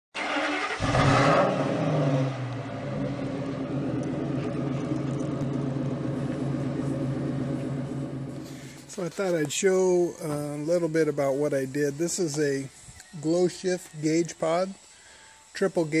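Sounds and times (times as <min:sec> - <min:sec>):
engine revving then idling: 0:00.2 - 0:09.0.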